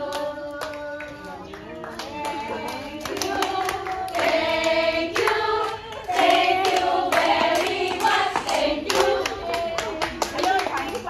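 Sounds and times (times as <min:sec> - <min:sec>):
group clapping in a beat: 0:00.0 - 0:11.0.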